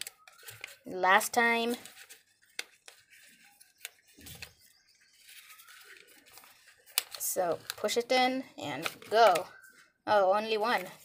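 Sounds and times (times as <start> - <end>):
paper rustling: 0.0 - 11.0
stiff paper clicks and taps: 1.7 - 4.6, 5.9 - 8.0, 8.7 - 9.5.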